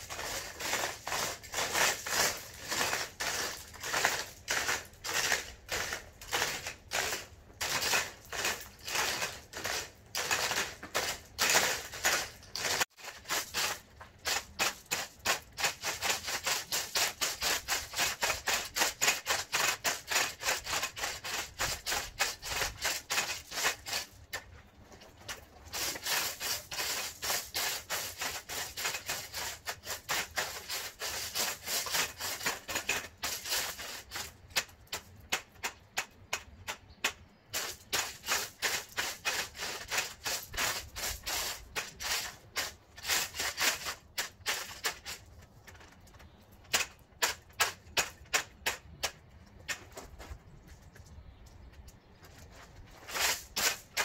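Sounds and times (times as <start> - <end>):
rake scraping through wet gravel: 0.0 - 51.4, 52.0 - 54.0.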